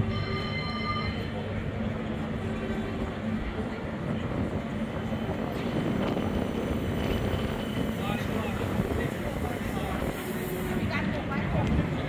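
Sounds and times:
street noise: 0:00.0 - 0:12.0
tram running along street: 0:00.0 - 0:12.0.

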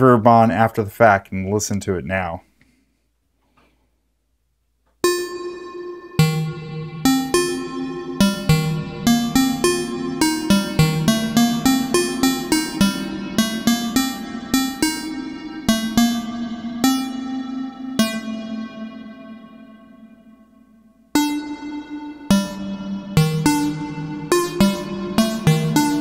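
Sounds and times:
synthesizer plucky notes with reverb: 0:05.0 - 0:26.0.

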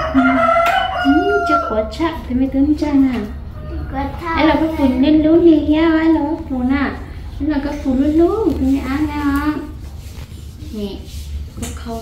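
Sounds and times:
rooster crowing: 0:00.0 - 0:02.0
people talking: 0:01.1 - 0:09.8, 0:10.6 - 0:12.0.

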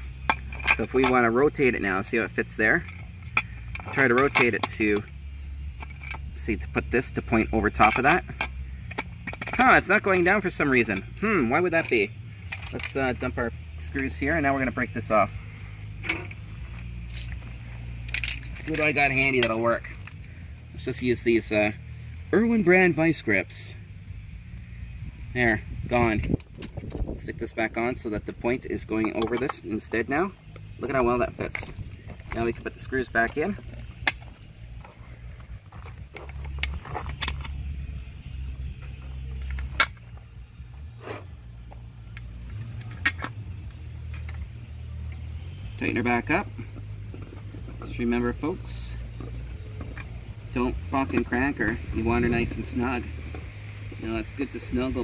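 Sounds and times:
faint high-pitched whine: 0:00.0 - 0:55.0
steady low hum: 0:00.0 - 0:55.0
steady low rumble: 0:00.0 - 0:55.0.

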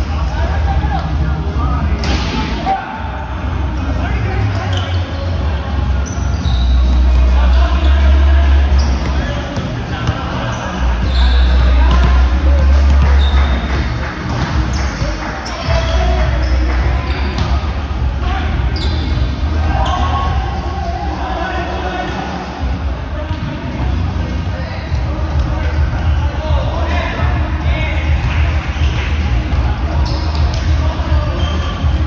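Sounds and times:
players chatter: 0:00.0 - 0:32.0
sneakers squeaking: 0:04.3 - 0:20.8, 0:28.1 - 0:32.0.

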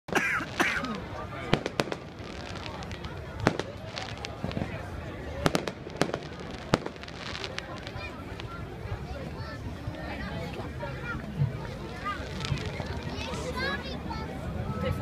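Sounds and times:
fireworks crackling: 0:00.1 - 0:09.0, 0:11.5 - 0:13.6
fireworks bangs: 0:00.4 - 0:08.4.

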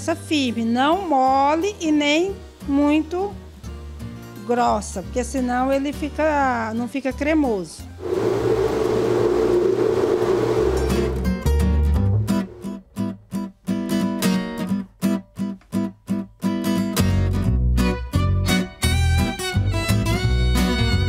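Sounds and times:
electric blender running: 0:08.0 - 0:11.5
acoustic guitar music: 0:10.3 - 0:21.0.

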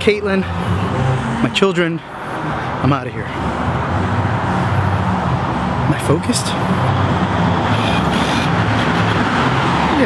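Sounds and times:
road traffic noise: 0:00.0 - 0:10.0
vehicle engine humming nearby: 0:00.0 - 0:10.0.

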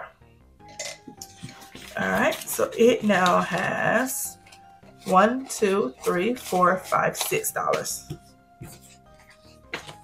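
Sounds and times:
soft background music: 0:00.0 - 0:10.0
paper bills rustling: 0:01.2 - 0:08.1.

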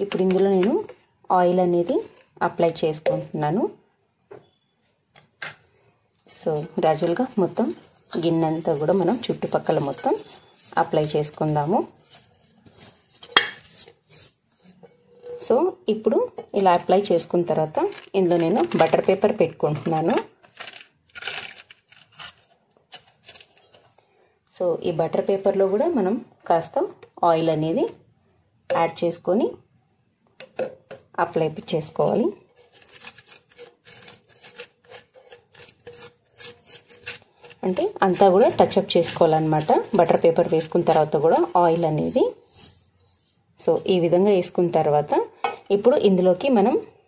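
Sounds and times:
paper scratching in metal pot: 0:06.3 - 0:16.0, 0:16.6 - 0:23.9, 0:31.4 - 0:44.2
fingers rubbing inside bowl: 0:32.4 - 0:43.4.

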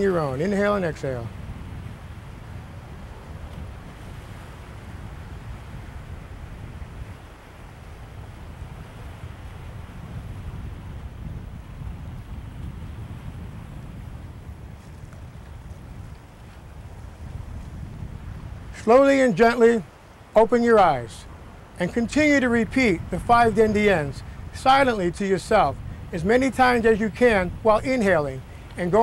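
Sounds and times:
faint ocean waves: 0:00.0 - 0:29.0
wind buffeting microphone: 0:00.0 - 0:29.0.

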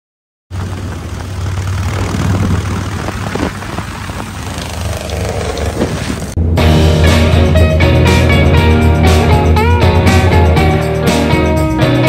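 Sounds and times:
motorcycle engine running: 0:00.5 - 0:06.5
road noise: 0:00.5 - 0:10.7.

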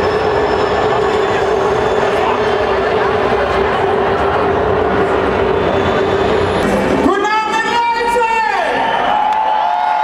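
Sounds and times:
steady tone: 0:00.0 - 0:08.0
loud live concert: 0:00.0 - 0:10.0.

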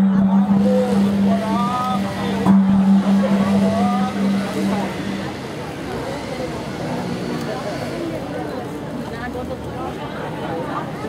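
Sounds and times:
man chanting: 0:00.0 - 0:05.2
steady low hum: 0:00.0 - 0:07.2.

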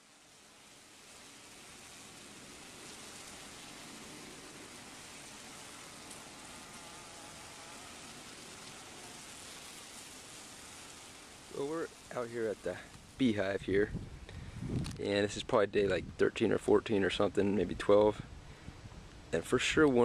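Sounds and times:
bees buzzing: 0:00.0 - 0:13.5
even hiss: 0:00.0 - 0:20.0.

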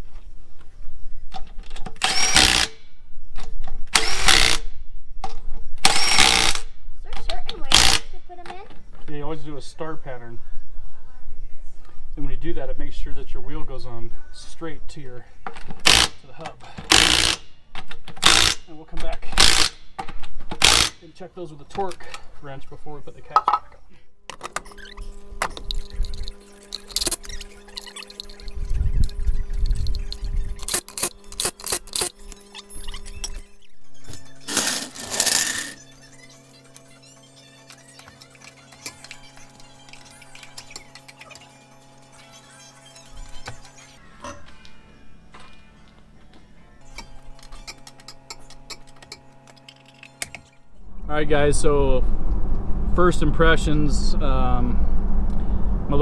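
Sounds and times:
loud rushing noise: 0:50.9 - 0:56.0.

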